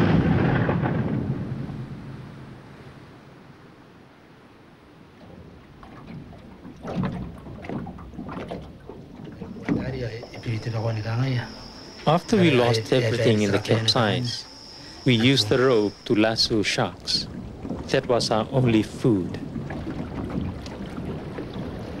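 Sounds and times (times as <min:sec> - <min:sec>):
thunder rumbling: 0:00.0 - 0:03.8, 0:09.4 - 0:22.0
quiet irregular sounds: 0:02.4 - 0:22.0.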